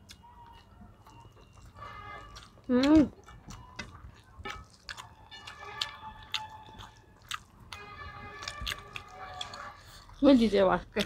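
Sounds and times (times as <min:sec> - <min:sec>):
people chewing: 0:00.0 - 0:11.0.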